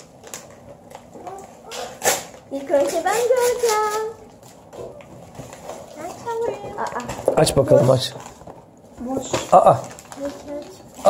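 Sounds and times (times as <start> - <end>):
envelope tearing open: 1.7 - 2.4, 9.4 - 10.9
padded envelope rustling: 7.7 - 11.0.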